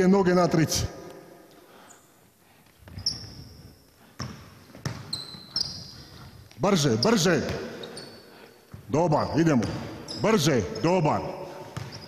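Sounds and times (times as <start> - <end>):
basketball shoes squeaking: 2.6 - 12.0
basketball bouncing on hardwood: 4.2 - 5.1, 11.8 - 12.0.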